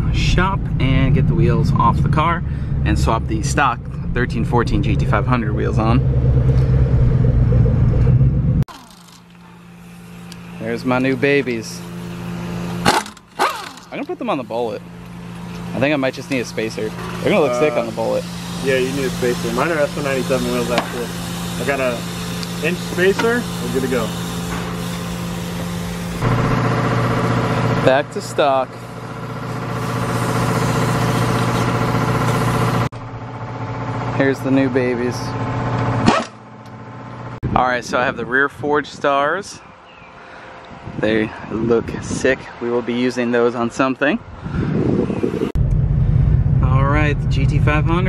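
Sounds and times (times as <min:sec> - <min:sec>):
road noise: 0:00.0 - 0:26.3
truck engine drone: 0:00.0 - 0:37.4, 0:44.8 - 0:48.0.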